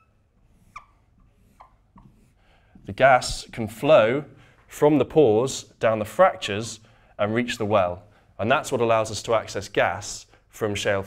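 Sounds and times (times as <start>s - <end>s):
marker squeaking on a whiteboard: 0.0s - 2.4s.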